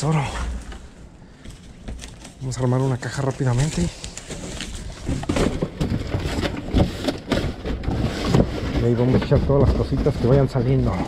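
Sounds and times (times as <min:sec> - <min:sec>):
cardboard scraping and flapping: 0:00.1 - 0:11.0.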